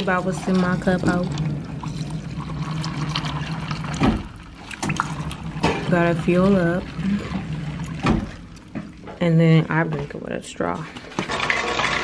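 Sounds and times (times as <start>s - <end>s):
water pouring into cup: 0.0s - 9.2s, 11.1s - 12.0s.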